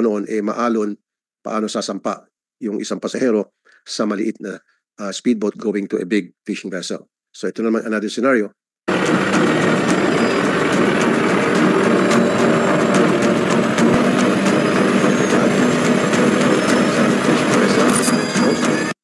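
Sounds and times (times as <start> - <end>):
boat engine running: 8.9 - 19.0.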